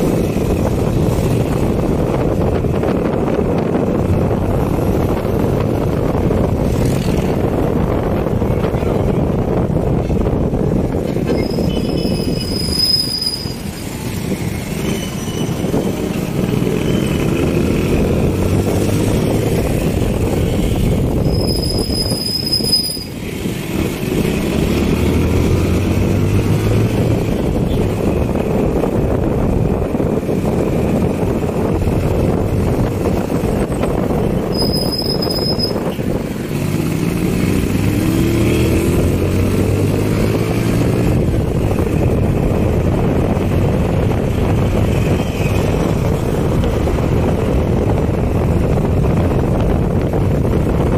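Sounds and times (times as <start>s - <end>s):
rushing wind: 0.0s - 50.9s
motorcycle engine revving: 10.9s - 28.8s, 30.4s - 49.7s
high-pitched squeal: 11.2s - 15.8s, 21.2s - 23.2s, 34.4s - 35.9s.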